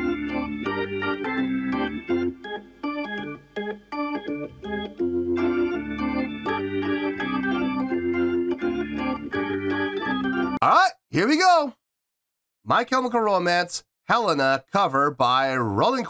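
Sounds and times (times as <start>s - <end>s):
organ playing held chords: 0.0s - 10.6s.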